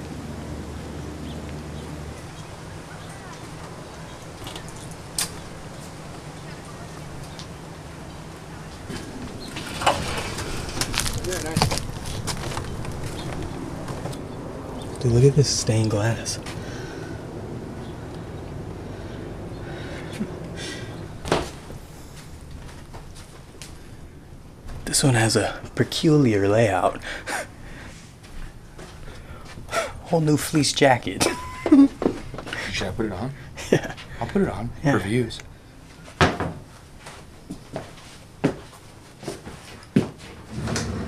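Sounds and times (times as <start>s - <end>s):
low room noise: 0.0s - 41.0s
sharp footsteps: 8.8s - 14.2s.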